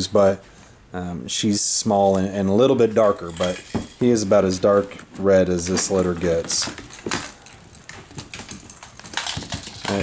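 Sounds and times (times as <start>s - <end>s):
puppy claws scrabbling on tiles: 4.9s - 10.0s.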